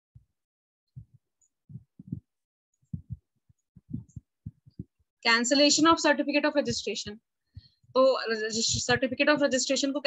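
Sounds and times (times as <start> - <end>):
soft low thumps: 0.9 - 5.1, 7.6 - 9.2.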